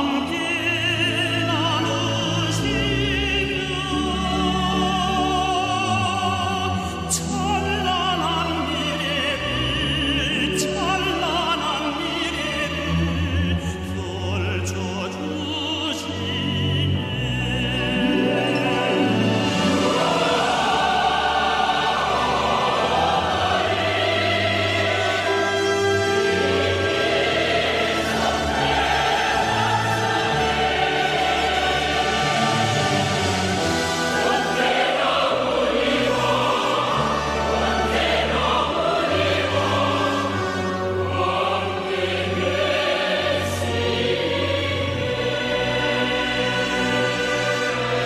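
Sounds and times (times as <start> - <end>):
choir singing: 0.0 - 48.0
orchestra playing: 0.0 - 48.0.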